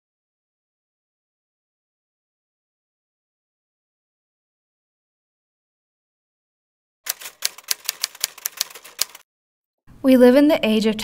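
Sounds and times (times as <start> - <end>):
rapid typing on a keyboard: 7.1 - 9.2.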